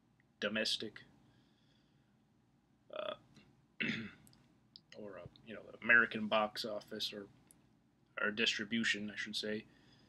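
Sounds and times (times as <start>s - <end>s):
throat clearing: 3.8s - 4.3s.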